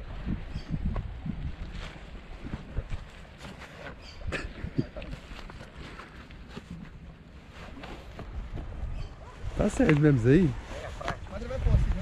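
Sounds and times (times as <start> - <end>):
wind rumble on microphone: 0.0 - 5.7, 6.7 - 12.0
wetsuit rubbing: 1.7 - 12.0.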